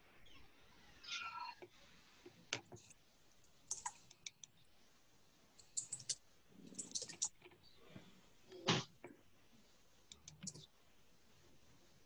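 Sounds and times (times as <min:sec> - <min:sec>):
faint voice: 0:01.0 - 0:01.6
faint scattered clicks: 0:01.6 - 0:04.6, 0:05.6 - 0:07.7, 0:10.1 - 0:10.7.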